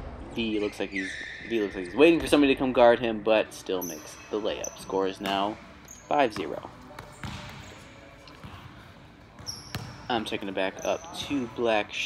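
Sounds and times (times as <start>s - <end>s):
basketball bouncing on gym floor: 6.2s - 11.6s.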